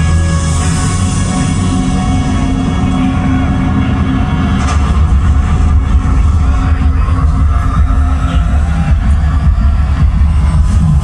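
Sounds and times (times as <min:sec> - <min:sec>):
instrumental music over arena speakers: 0:00.0 - 0:11.0.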